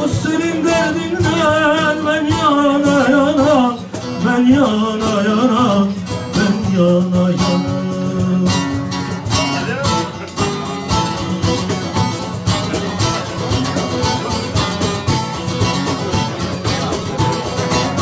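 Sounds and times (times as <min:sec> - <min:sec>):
plucked long-necked lute melody: 0:00.0 - 0:18.0.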